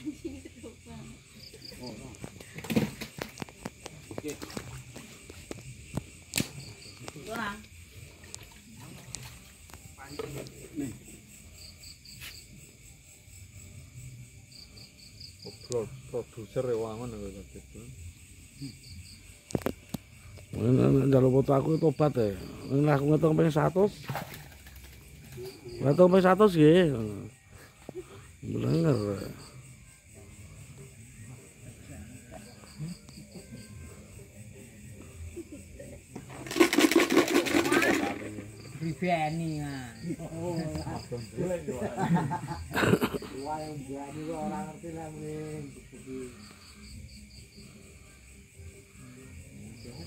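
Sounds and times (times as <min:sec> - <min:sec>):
crickets chirping: 0:00.0 - 0:50.0.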